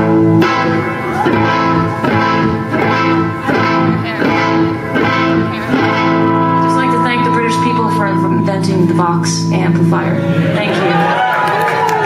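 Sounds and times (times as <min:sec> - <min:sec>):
electric guitar strumming chords: 0:00.0 - 0:11.4.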